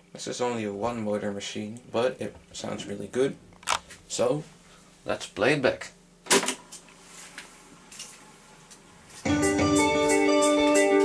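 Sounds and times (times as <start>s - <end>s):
tape recorder lever clunk: 3.6s - 4.0s
guitar music through small speakers: 9.2s - 11.0s.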